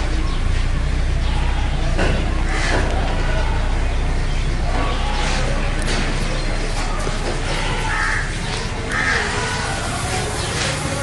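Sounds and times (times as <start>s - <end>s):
steady background din: 0.0s - 11.0s
harsh animal calls: 7.2s - 10.9s.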